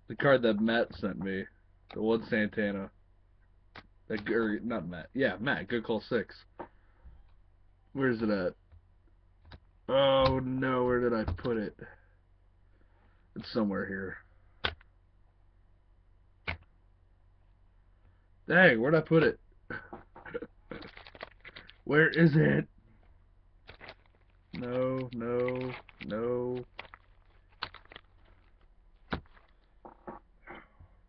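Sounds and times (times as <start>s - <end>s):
trading cards rustling: 20.7s - 22.3s, 23.6s - 30.2s.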